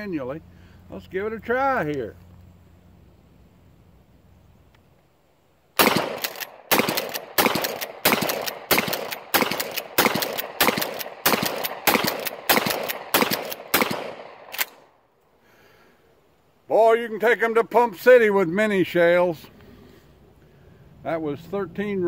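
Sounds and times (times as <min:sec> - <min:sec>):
shotgun pump action: 0:05.8 - 0:14.9
shotgun shots: 0:05.8 - 0:14.9.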